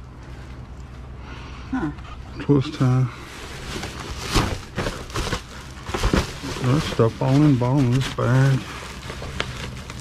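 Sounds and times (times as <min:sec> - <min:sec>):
plastic trash bags rustling: 0:02.7 - 0:10.0.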